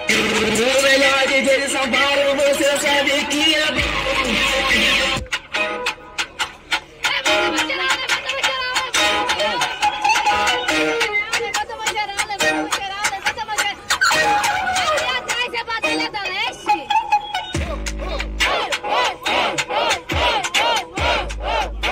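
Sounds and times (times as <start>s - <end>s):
crowd noise: 0.0s - 21.9s
hip-hop instrumental beat: 0.0s - 21.9s.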